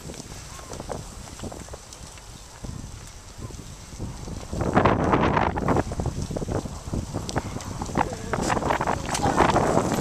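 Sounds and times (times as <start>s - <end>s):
bicycle tyres crunching on gravel: 0.0s - 10.0s
wind noise on microphone: 0.0s - 10.0s.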